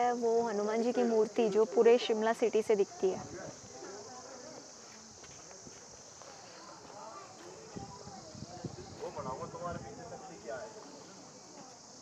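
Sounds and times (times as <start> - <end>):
woman's voice: 0.0 - 3.2
faint distant voices: 0.0 - 12.0
high-pitched insect chorus: 0.0 - 12.0.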